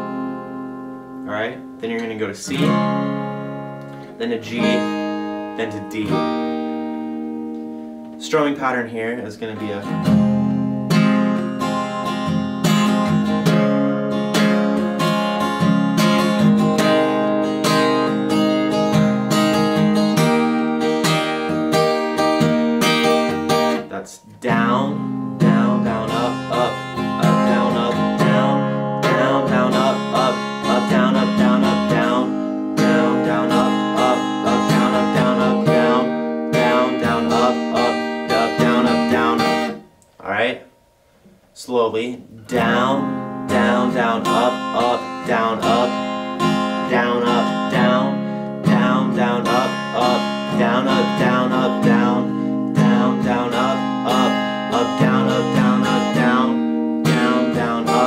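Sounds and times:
acoustic guitar strumming: 0:00.0 - 0:58.0.

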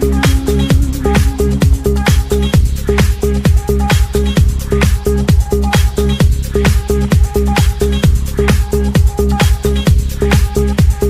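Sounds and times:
bassline: 0:00.0 - 0:11.0
house dance music: 0:00.0 - 0:11.0
kick drum: 0:00.0 - 0:11.0
ticking hi-hats: 0:00.0 - 0:11.0.

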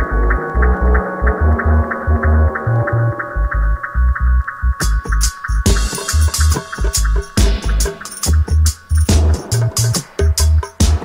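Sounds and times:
deep pulsing bassline: 0:00.0 - 0:11.0
muffled ticking rhythm: 0:00.0 - 0:11.0
drum and cymbal hits: 0:04.8 - 0:11.0.

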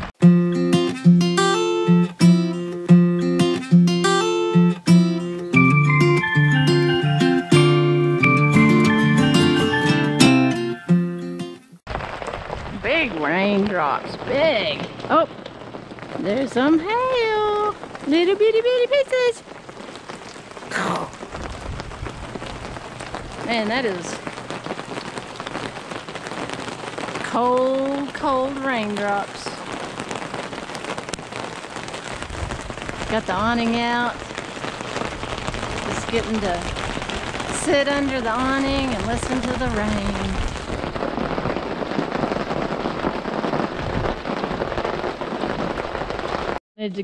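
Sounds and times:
heavy rain on concrete: 0:00.0 - 0:46.6
hail pellets hitting gravel: 0:11.9 - 0:46.6.

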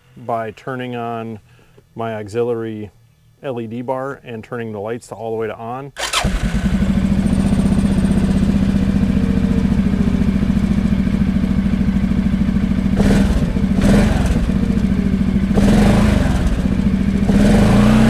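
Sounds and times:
atv engine idling: 0:06.0 - 0:18.0.

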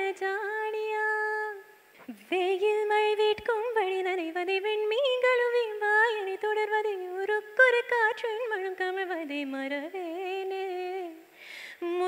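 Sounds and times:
woman singing unaccompanied: 0:00.0 - 0:12.0
quick breath in: 0:11.3 - 0:11.8.

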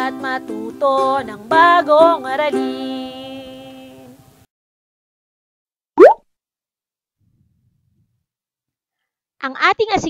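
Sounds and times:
cartoon bloop rising in pitch: 0:06.0 - 0:06.2.

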